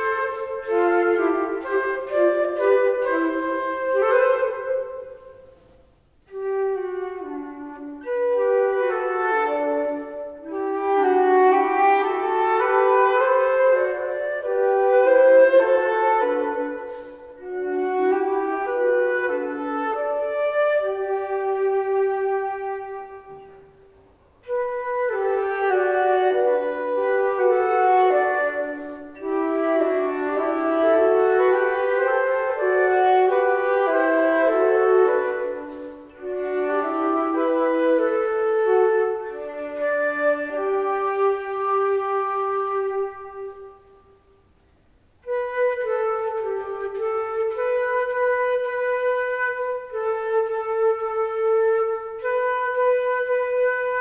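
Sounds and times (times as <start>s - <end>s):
flute duet: 0.0s - 54.0s.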